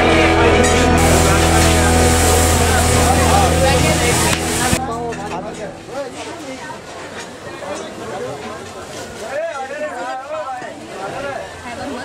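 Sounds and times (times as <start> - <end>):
loud low hum: 0.0 - 7.0
people talking: 0.0 - 12.0.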